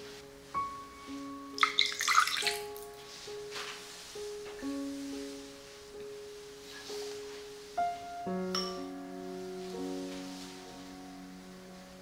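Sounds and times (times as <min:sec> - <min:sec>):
soft instrumental music: 0:00.0 - 0:12.0
liquid pouring into glass bowl: 0:01.6 - 0:02.8.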